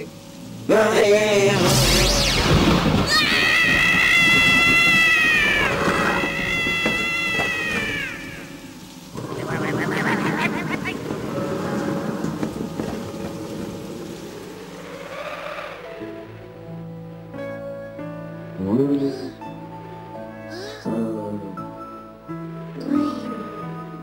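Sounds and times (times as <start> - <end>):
soft music: 0.0 - 2.4, 5.2 - 24.0
unpitched noise: 1.4 - 8.6
cartoon cat meowing: 3.1 - 8.5.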